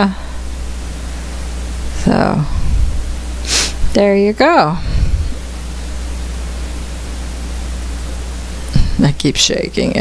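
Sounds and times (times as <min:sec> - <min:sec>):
constant low hum: 0:00.0 - 0:10.0
steady hiss: 0:00.3 - 0:09.9.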